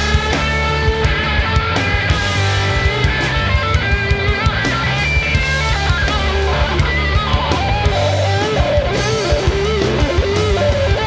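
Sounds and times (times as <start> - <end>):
garage rock band: 0.0 - 11.0.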